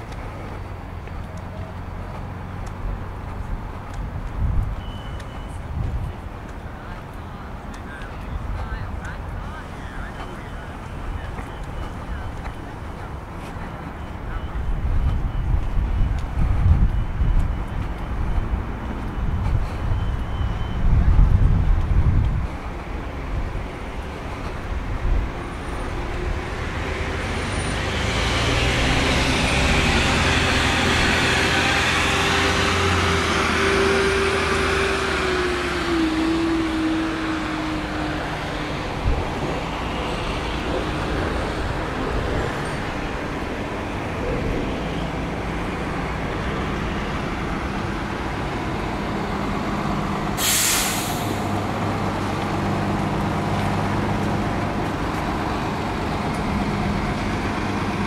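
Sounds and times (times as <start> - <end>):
bus diesel engines droning: 0.0 - 58.0
engine whine sliding down: 15.0 - 58.0
air brakes hiss: 50.4 - 51.6.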